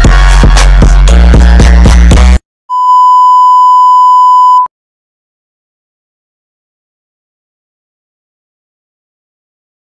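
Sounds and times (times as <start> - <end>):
music with heavy beat: 0.0 - 2.4
loud electronic beep: 2.7 - 4.7.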